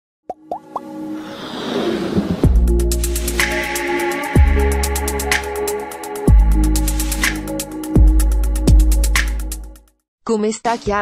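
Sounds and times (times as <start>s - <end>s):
synth riser: 0.8s - 7.2s.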